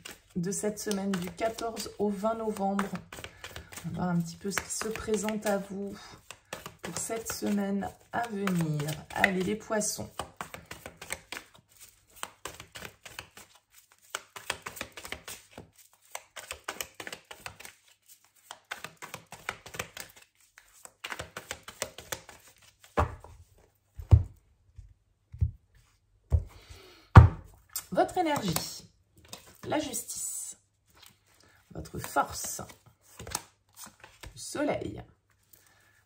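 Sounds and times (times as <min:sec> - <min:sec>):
cards being shuffled: 0:00.0 - 0:24.4, 0:27.8 - 0:30.0, 0:30.9 - 0:34.4
cards thumping on table: 0:21.0 - 0:23.3.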